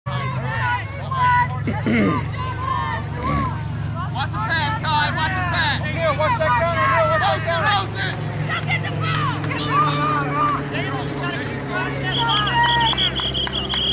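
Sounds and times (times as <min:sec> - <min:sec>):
crowd shouting and calling: 0:00.1 - 0:13.9.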